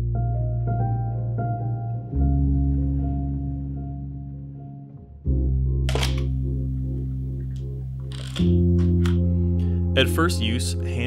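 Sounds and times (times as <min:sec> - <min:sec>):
sustained music chords: 0:00.0 - 0:11.0
camera shutter clacks: 0:05.9 - 0:06.3.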